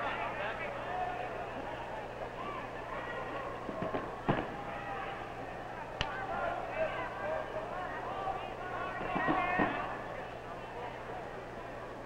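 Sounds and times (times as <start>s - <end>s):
faint crowd voices: 0.0s - 12.0s
film soundtrack hum and hiss: 0.0s - 12.0s.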